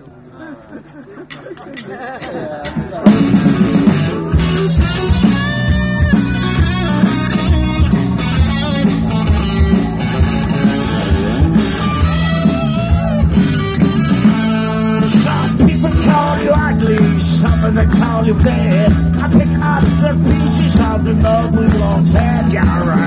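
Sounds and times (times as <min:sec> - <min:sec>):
drum beat: 0:01.3 - 0:23.0
electric guitar: 0:03.0 - 0:23.0.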